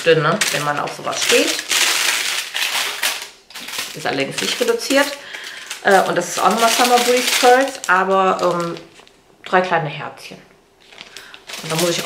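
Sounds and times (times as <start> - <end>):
plastic pack crinkling: 0.0 - 9.2, 10.8 - 12.0.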